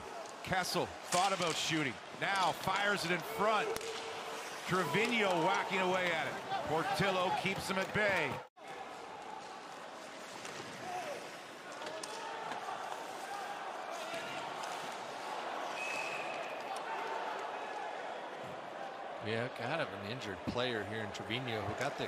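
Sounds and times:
hockey sticks and puck clacking: 0.0s - 17.1s
crowd noise: 0.0s - 22.0s
skates on ice: 1.0s - 15.8s.

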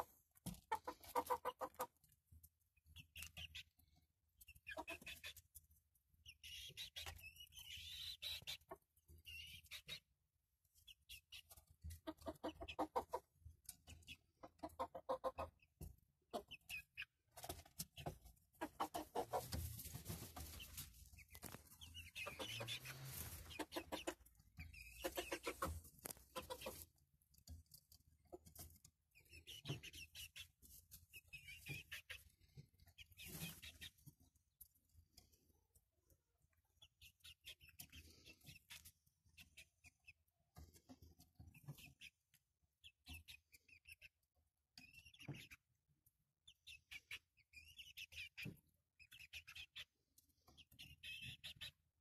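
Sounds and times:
hens clucking softly: 0.0s - 5.6s, 10.9s - 34.4s.

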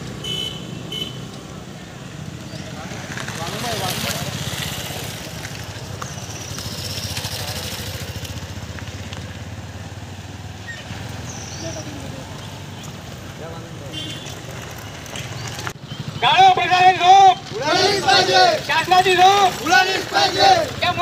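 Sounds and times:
motorcycle engines running: 0.0s - 21.0s
people talking: 2.7s - 4.7s, 16.2s - 21.0s.

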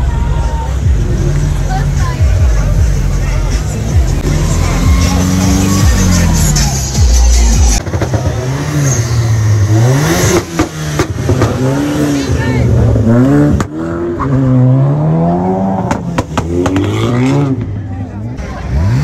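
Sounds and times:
car engines revving past: 0.7s - 19.0s.

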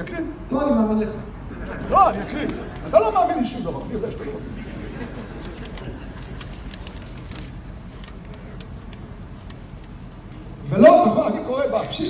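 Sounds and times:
low steady hum: 0.0s - 12.0s
paper rustling: 1.9s - 10.5s.

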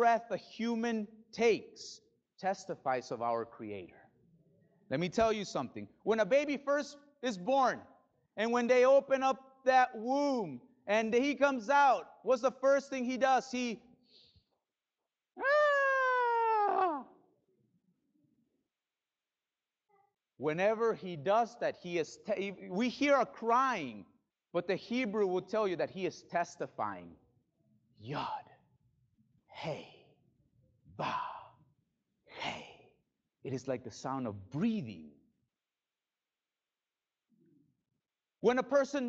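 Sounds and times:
man imitating baby crying: 15.4s - 17.1s.

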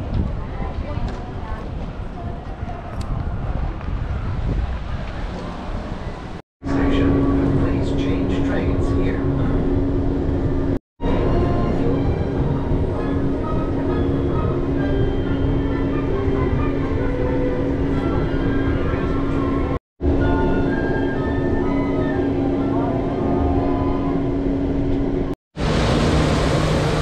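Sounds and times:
monorail car rumbling: 0.0s - 27.0s.

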